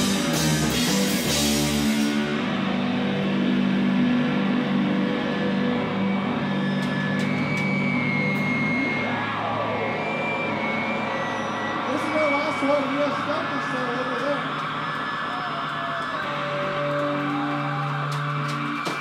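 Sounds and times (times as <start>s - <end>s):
electric guitars droning: 0.0s - 19.0s
high feedback whine: 0.0s - 19.0s.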